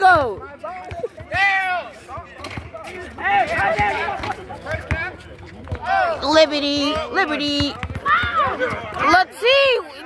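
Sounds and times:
players' footsteps on court: 0.0 - 9.3
basketball bouncing: 3.6 - 9.2.

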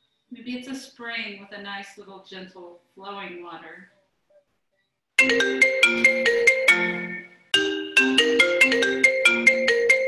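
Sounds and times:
marimba ringtone melody: 5.2 - 10.0.

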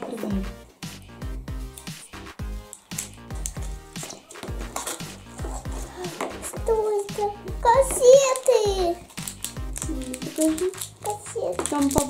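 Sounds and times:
background music with bass: 0.1 - 12.0
plastic candy packet crinkling: 2.6 - 12.0
child's voice: 5.8 - 9.1, 9.8 - 12.0.

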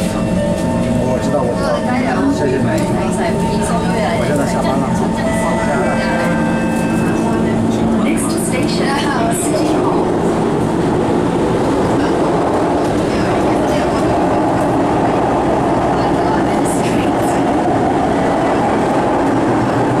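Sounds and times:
metro train rumbling: 0.0 - 20.0.

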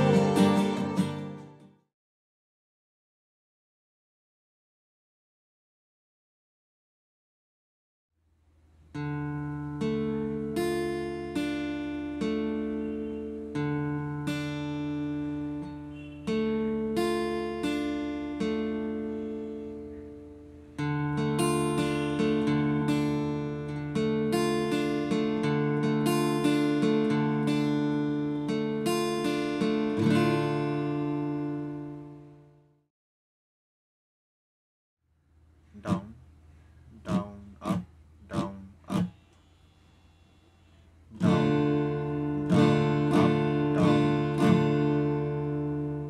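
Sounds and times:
acoustic guitar arpeggios: 0.0 - 1.8, 8.9 - 32.7, 35.8 - 36.2, 37.0 - 39.3, 41.0 - 46.0.

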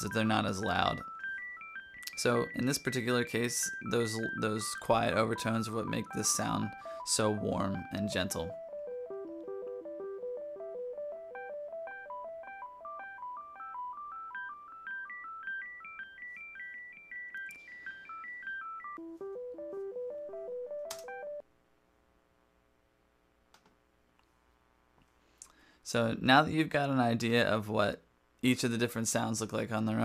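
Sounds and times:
synthesizer arpeggio: 0.0 - 21.4.

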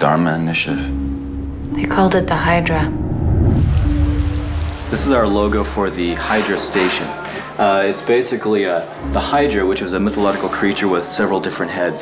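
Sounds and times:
held musical note: 0.8 - 7.7
low rumble: 1.2 - 5.8
steady rain: 3.6 - 9.0.

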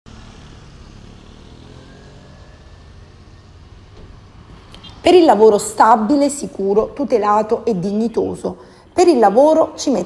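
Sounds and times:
motor scooter passing: 0.1 - 7.2
small cars passing: 0.1 - 7.8.

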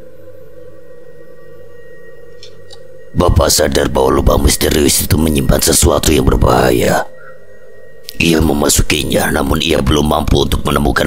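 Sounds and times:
ambient drone music: 0.0 - 11.0.

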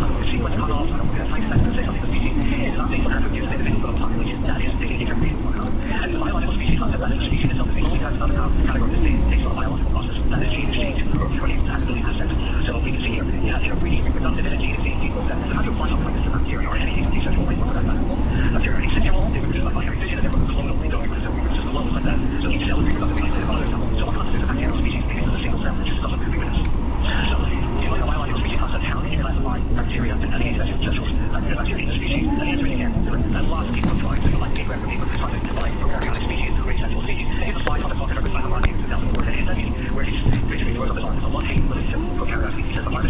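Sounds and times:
chatter of voices: 0.0 - 43.0
low rumble: 0.0 - 43.0.

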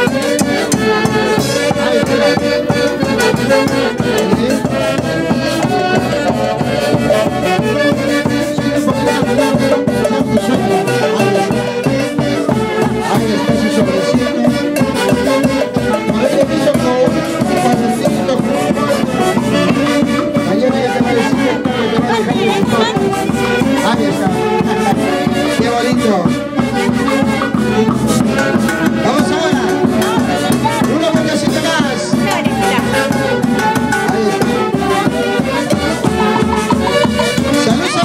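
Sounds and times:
saxophone band playing dance music: 0.0 - 38.0.

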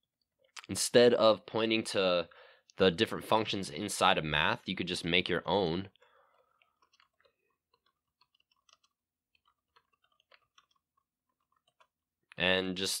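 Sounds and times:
keyboard keys clicking: 6.8 - 10.8.

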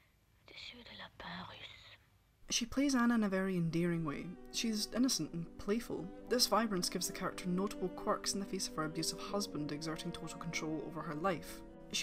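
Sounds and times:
woman whispering: 0.4 - 2.1.

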